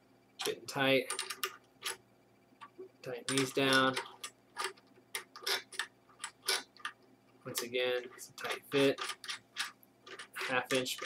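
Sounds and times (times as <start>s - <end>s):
metal fittings clicking: 3.3s - 11.0s.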